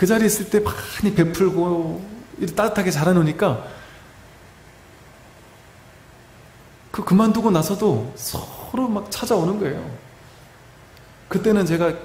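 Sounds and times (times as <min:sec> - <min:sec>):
man speaking: 0:00.0 - 0:03.7, 0:06.9 - 0:10.0, 0:11.3 - 0:12.0.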